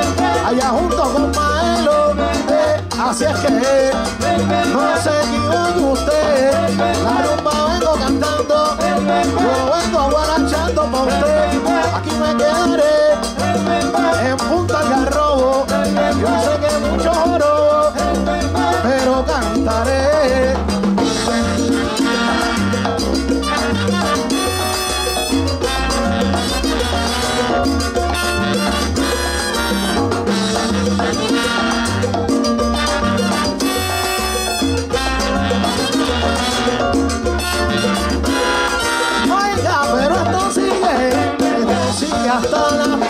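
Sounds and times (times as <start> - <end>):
live salsa band playing: 0.0 - 43.0
pulsing bass line: 0.0 - 43.0.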